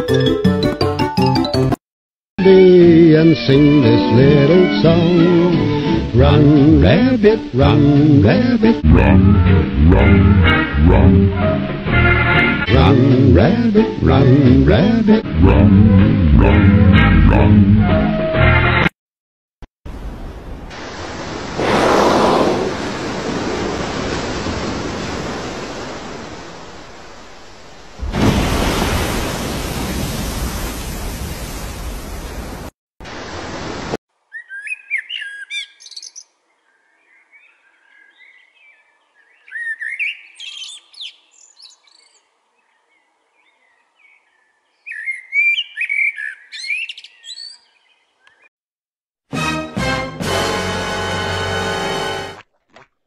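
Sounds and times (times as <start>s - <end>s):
loud even rushing noise: 21.1s - 24.0s
blackbird singing: 34.3s - 48.5s.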